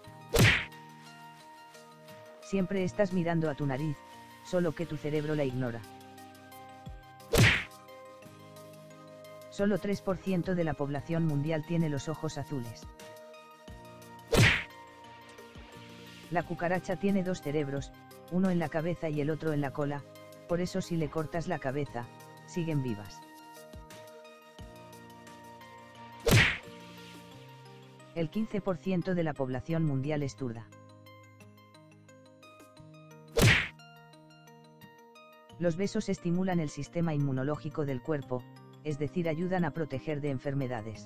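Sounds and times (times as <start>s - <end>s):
soft background music chords: 0.0s - 41.0s
sharp whack hit effect: 0.4s - 0.7s, 7.3s - 7.7s, 14.3s - 14.7s, 26.3s - 26.6s, 33.4s - 33.7s.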